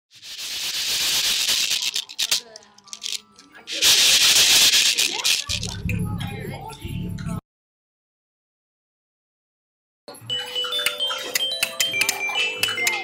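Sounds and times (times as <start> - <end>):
maracas shaken: 0.1 - 5.9.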